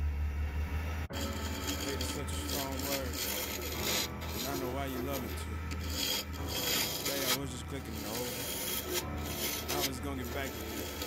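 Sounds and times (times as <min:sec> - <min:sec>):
lathe humming: 0:01.0 - 0:11.0
sanding on wood lathe: 0:01.1 - 0:11.0.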